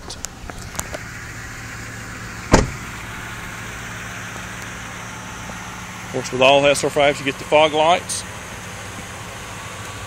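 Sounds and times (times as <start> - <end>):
engine idling: 0.0 - 10.0
door slam: 2.5 - 3.0.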